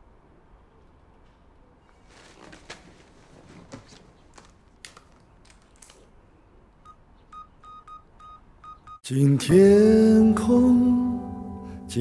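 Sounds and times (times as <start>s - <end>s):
phone keypad beeps: 6.8s - 9.0s.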